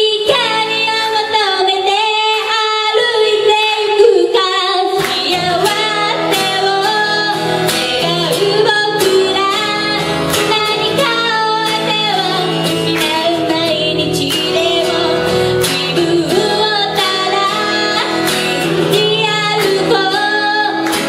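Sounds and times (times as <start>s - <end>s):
acoustic guitar strumming: 0.0s - 21.0s
woman singing: 0.0s - 21.0s.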